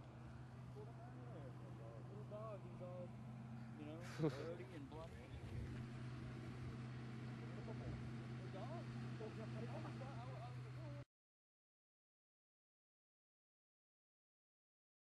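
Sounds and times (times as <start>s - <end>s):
low mechanical hum: 0.0s - 11.1s.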